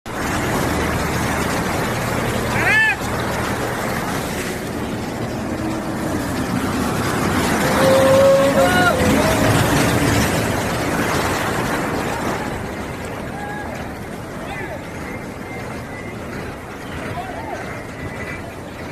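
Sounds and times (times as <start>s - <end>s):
floodwater churning and splashing: 0.1s - 18.9s
vehicle engines running: 0.1s - 18.9s
raised voices: 2.4s - 3.2s, 7.4s - 10.8s, 11.8s - 18.9s
person shouting: 2.6s - 3.0s, 7.7s - 9.6s.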